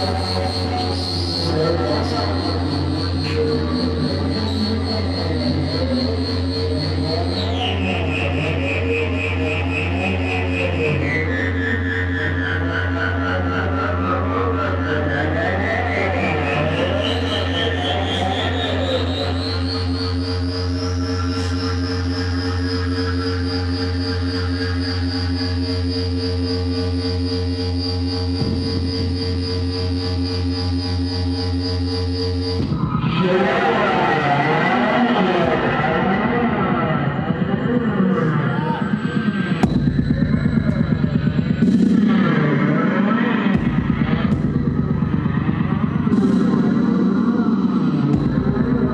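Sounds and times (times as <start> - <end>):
low electronic drone: 0.0 - 48.9
sustained electronic tones: 25.0 - 48.9.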